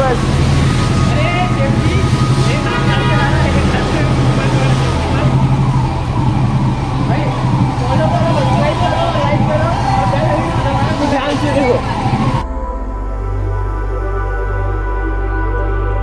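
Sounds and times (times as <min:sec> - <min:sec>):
motorcycle engine humming: 0:00.0 - 0:12.4
people talking: 0:00.0 - 0:12.4.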